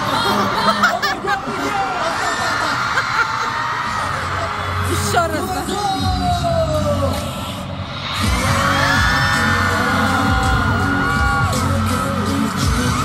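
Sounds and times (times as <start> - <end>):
fans screaming: 0.0 - 13.0
pop dance music over loudspeakers: 0.0 - 13.0.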